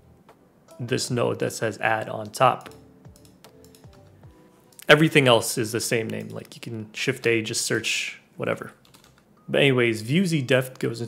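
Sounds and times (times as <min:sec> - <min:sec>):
faint lo-fi background music: 0:00.0 - 0:11.0
computer keyboard clicking: 0:02.6 - 0:04.0, 0:06.0 - 0:06.6, 0:08.8 - 0:09.2.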